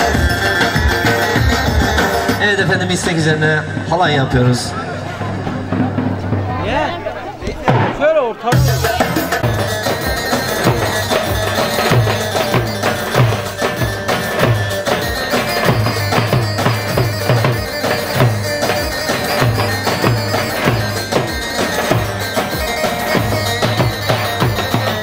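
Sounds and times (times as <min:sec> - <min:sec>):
reedy wind instrument melody: 0:00.0 - 0:07.6, 0:08.4 - 0:25.0
steady drum beat: 0:00.0 - 0:25.0.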